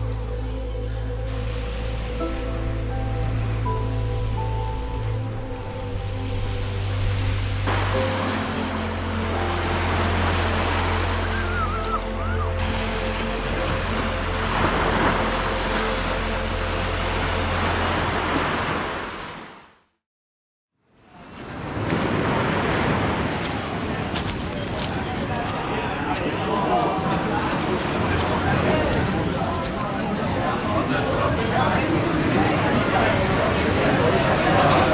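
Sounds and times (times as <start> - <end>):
music with held notes and bass: 0.0 - 18.4
small waves breaking on beach: 21.2 - 24.4.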